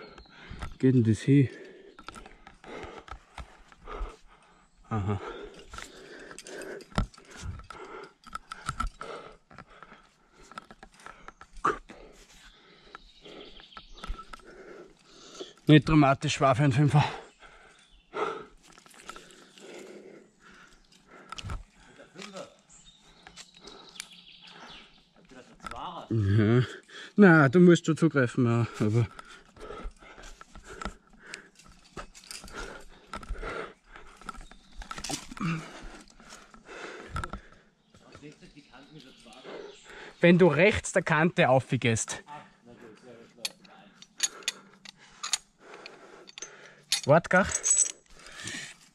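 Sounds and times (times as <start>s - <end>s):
metal chain and carabiners clinking: 0.0s - 4.1s, 4.9s - 24.6s, 28.4s - 37.5s, 43.4s - 48.9s
low grunt: 4.9s - 6.8s, 11.6s - 12.1s, 35.2s - 35.9s.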